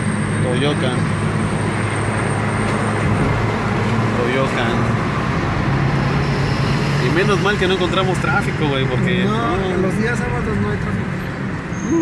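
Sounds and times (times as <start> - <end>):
road and engine rumble: 0.0 - 12.0
surrounding traffic: 0.0 - 12.0.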